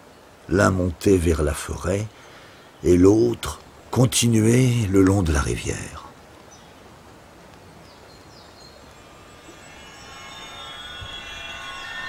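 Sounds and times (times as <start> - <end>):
faint bird chirps: 7.7 - 12.0
steady high tones: 8.9 - 12.0.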